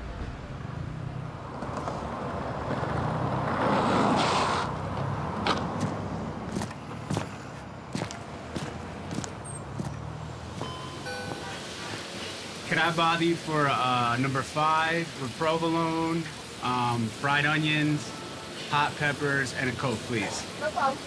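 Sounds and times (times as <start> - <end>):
car passing: 0.0 - 13.0
sneaker footsteps on concrete: 5.5 - 10.7.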